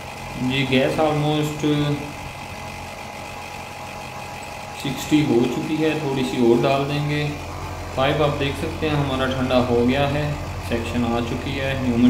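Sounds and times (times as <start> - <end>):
air conditioner unit humming: 0.0 - 12.0.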